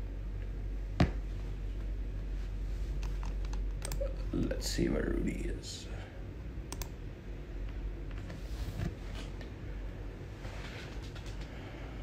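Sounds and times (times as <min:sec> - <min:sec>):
steady low hum: 0:00.0 - 0:12.0
keyboard typing clicks: 0:03.0 - 0:04.1, 0:06.7 - 0:07.0.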